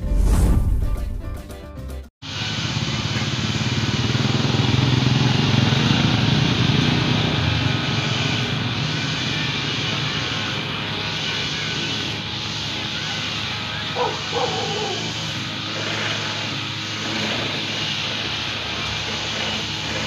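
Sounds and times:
loud outdoor rushing noise: 2.2s - 20.0s.

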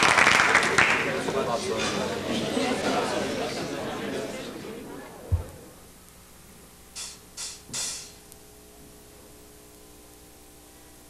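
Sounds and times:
amplifier hum: 2.8s - 11.0s
short hissing noises: 7.0s - 8.2s.

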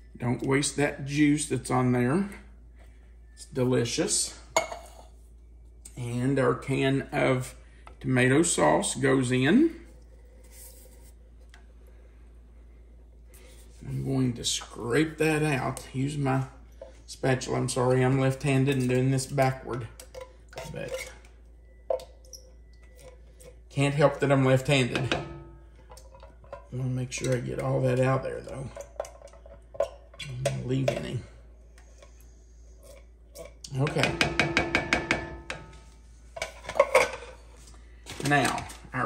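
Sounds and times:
spatula knocking in tin can: 34.0s - 35.7s.

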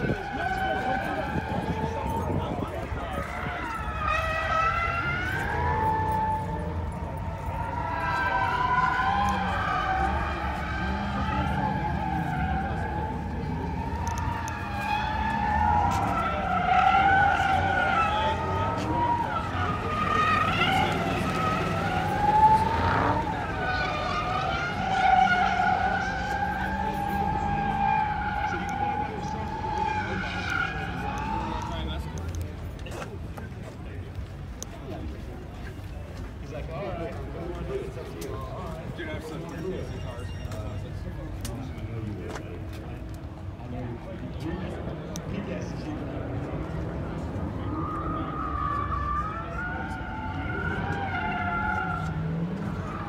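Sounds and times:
wavering high squeal: 39.4s - 42.2s.

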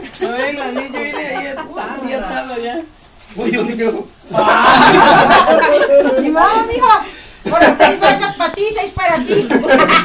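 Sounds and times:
people laughing: 0.0s - 2.2s, 4.2s - 10.0s
people talking: 0.0s - 10.0s.

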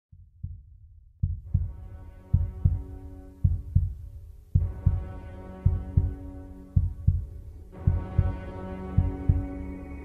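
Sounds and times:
heartbeat thumps: 0.1s - 10.0s
droning chord: 1.7s - 3.8s, 4.6s - 10.0s.

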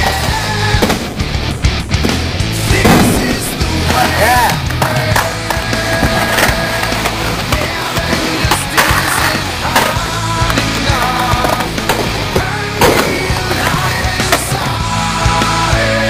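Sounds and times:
skateboard rolling on concrete: 0.0s - 2.6s, 3.5s - 16.0s
loud rock music: 0.0s - 16.0s
skateboard clacking on ground: 3.9s - 14.6s.

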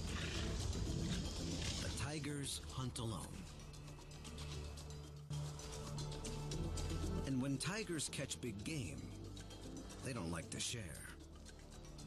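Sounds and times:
lionesses growling: 0.0s - 1.9s.

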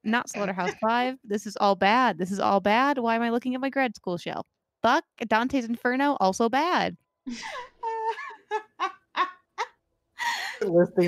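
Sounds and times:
person laughing: 0.4s - 0.8s, 7.3s - 11.0s.

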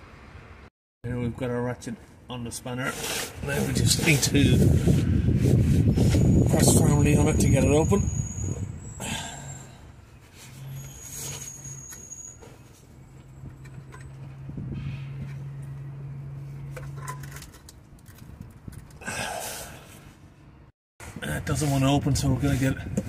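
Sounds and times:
handling scrapes: 2.8s - 8.6s, 10.0s - 14.0s, 21.0s - 22.9s.

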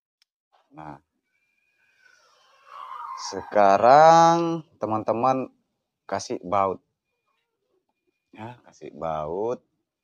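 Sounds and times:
man speaking: 0.8s - 1.0s, 3.2s - 5.5s, 6.1s - 6.8s, 8.4s - 9.6s.

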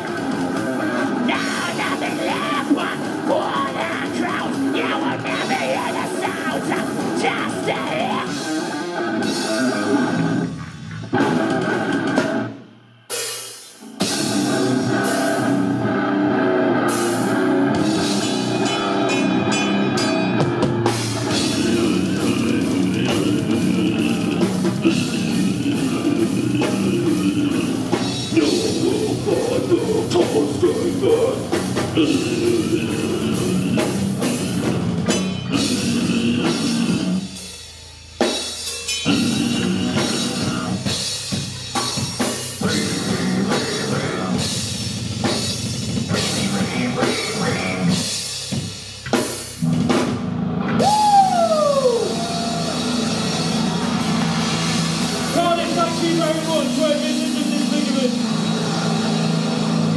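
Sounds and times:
drum kit with cymbals: 0.0s - 15.8s, 16.9s - 59.9s
distorted electric guitars: 0.0s - 59.9s.

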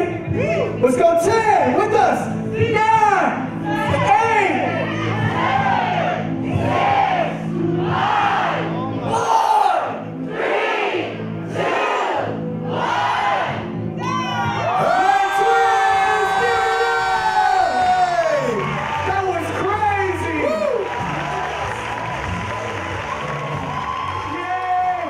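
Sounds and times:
crowd long held shout: 4.7s - 25.0s
crowd chanting in unison: 5.0s - 8.8s, 9.6s - 13.8s.

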